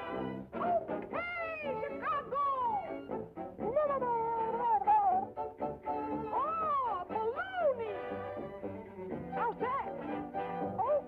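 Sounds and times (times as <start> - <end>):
band music: 0.0 - 11.0.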